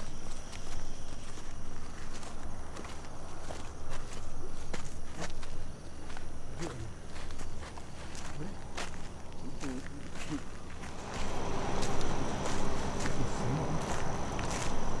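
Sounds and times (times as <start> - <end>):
footsteps scuffing on dirt: 0.0 - 15.0.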